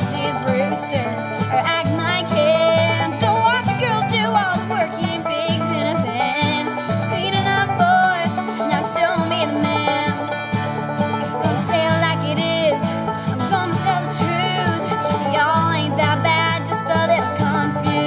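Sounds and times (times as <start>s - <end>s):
woman singing: 0.0s - 10.3s, 11.4s - 18.0s
live country-rock band: 0.0s - 18.0s.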